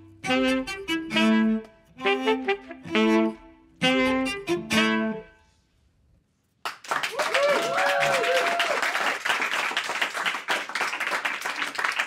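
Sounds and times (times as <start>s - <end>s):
saxophone and cello with band: 0.0s - 5.7s.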